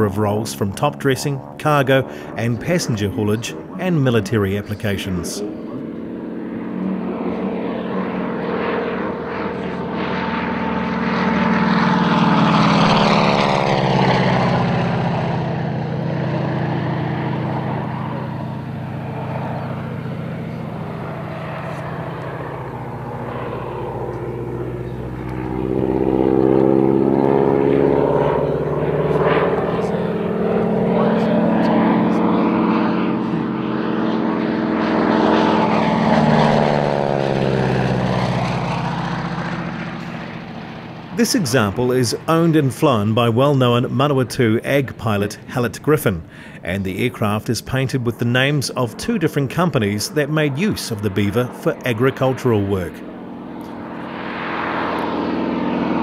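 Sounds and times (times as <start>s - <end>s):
propeller plane flying past: 0.0s - 56.0s.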